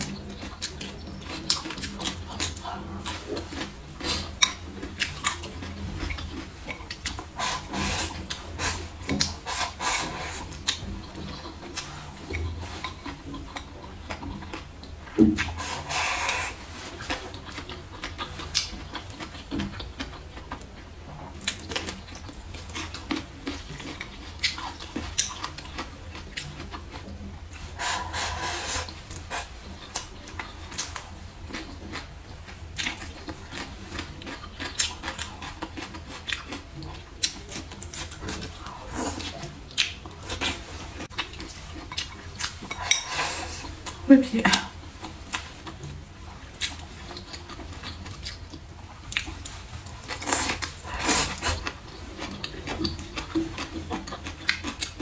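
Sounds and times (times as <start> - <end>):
wet chewing and lip-smacking: 0.0 - 55.0
slurping food: 0.6 - 13.7, 15.2 - 17.6, 27.5 - 31.1, 40.2 - 44.0, 49.1 - 55.0.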